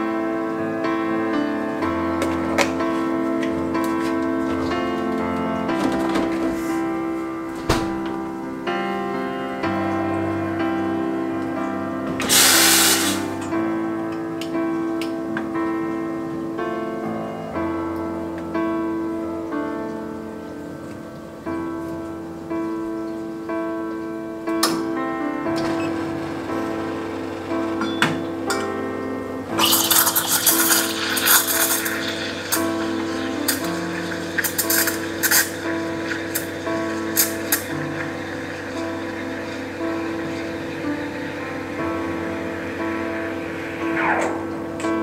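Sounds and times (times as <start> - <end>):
soft background music: 0.0 - 45.0
steam wand frothing milk: 12.2 - 13.4, 29.6 - 44.0.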